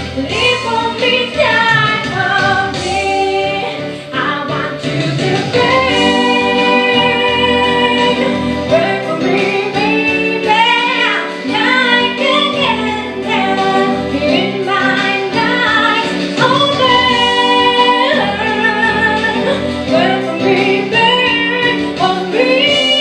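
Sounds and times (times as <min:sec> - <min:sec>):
recorded backing track: 0:00.0 - 0:23.0
woman singing a slow pop song: 0:00.0 - 0:23.0.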